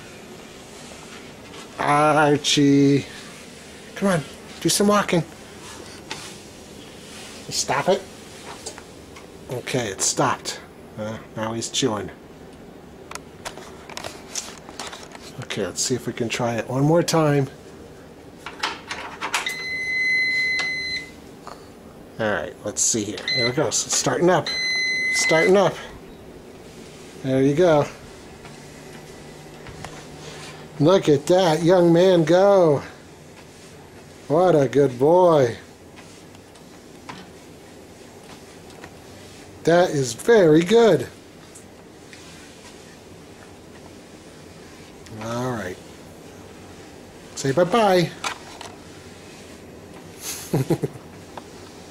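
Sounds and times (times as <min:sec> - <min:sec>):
treadmill high-pitched beep: 0:19.4 - 0:21.2, 0:23.2 - 0:23.8, 0:24.4 - 0:25.8
treadmill motor humming: 0:19.4 - 0:21.3, 0:22.2 - 0:48.2.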